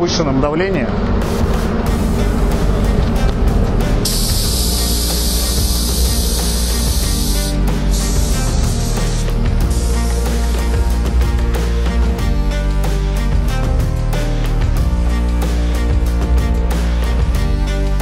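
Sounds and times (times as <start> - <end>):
background music: 0.0 - 18.0
spray gun hissing: 4.0 - 11.0.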